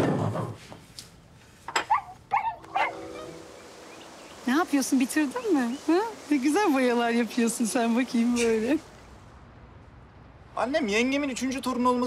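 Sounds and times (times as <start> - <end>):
dog barking: 1.9 - 3.0.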